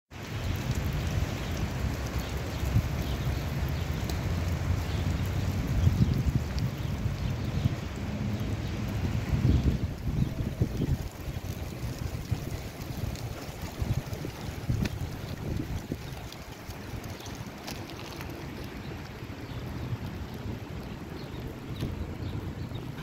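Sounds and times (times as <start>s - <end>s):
wind buffeting microphone: 0.2s - 23.0s.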